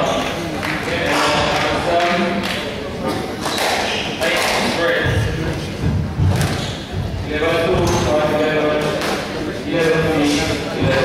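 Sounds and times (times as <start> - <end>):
squash ball smacking: 6.2 - 6.9.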